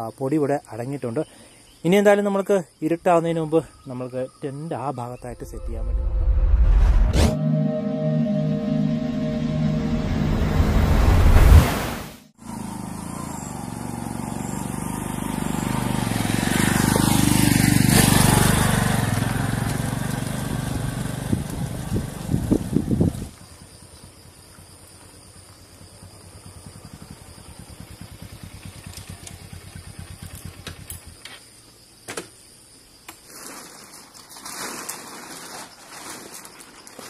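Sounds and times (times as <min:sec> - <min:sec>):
insects chirping: 0:00.0 - 0:06.2, 0:12.4 - 0:37.0
short musical sting: 0:05.3 - 0:12.2
motorcycle riding on dirt track: 0:11.6 - 0:31.5
engine idling: 0:25.9 - 0:31.2.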